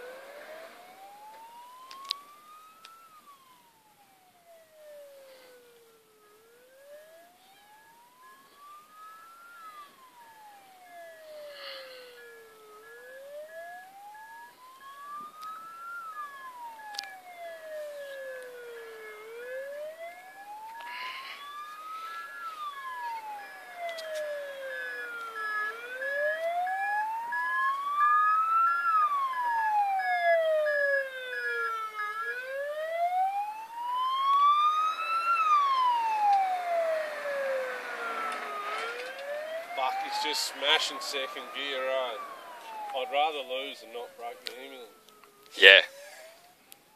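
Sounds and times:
ambulance siren wailing: 0.0s - 46.9s
faint steady high tone: 0.0s - 46.9s.

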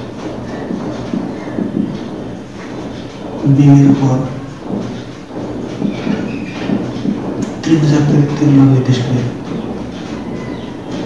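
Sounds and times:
marker scratching on whiteboard: 0.0s - 11.0s.

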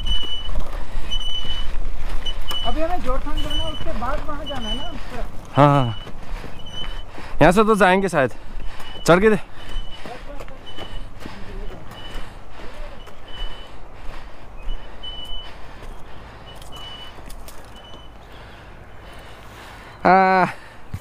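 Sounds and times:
low engine rumble: 0.0s - 21.0s.

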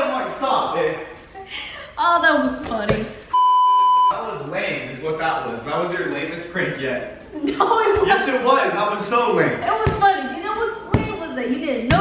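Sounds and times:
high-pitched test-tone beep: 3.3s - 4.2s.

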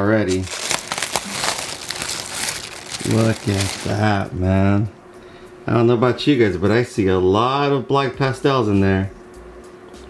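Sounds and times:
plastic bag crinkling: 0.3s - 4.2s.

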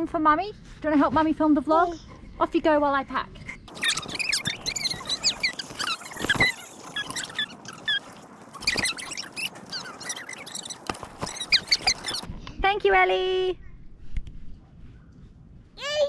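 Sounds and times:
high chirps and squeaks: 3.6s - 12.3s.

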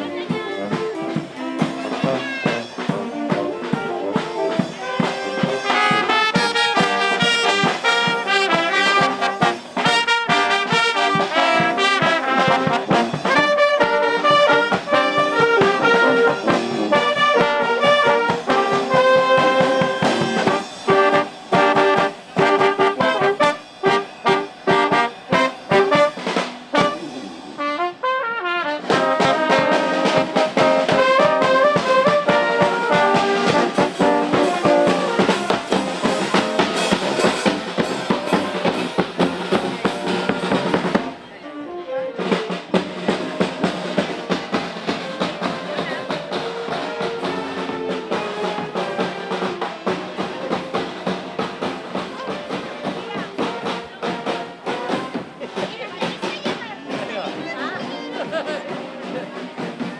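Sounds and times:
marching band playing: 0.0s - 59.9s.

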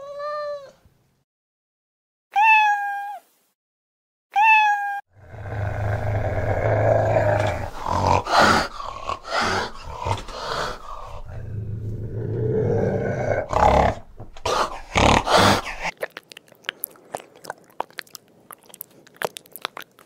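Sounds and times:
cat growling: 5.2s - 19.8s.

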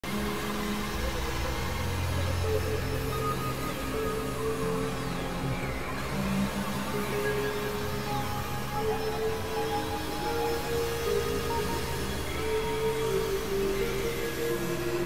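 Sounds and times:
steady noisy hiss: 0.0s - 15.0s.

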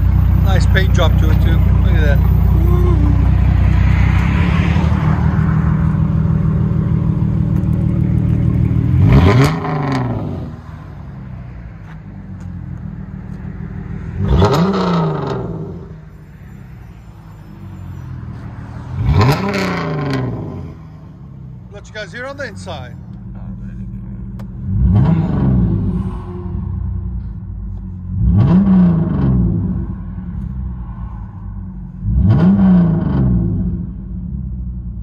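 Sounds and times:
car engine idling and revving: 0.0s - 35.0s.

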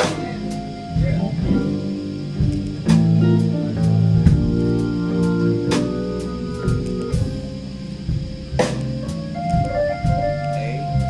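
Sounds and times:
bass: 0.0s - 11.0s
electric guitar sustained notes: 0.0s - 11.0s.

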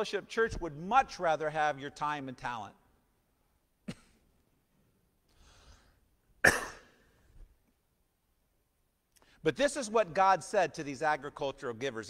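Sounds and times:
man coughing: 3.8s - 4.3s, 6.4s - 7.2s
faint intake of breath: 5.3s - 6.1s.

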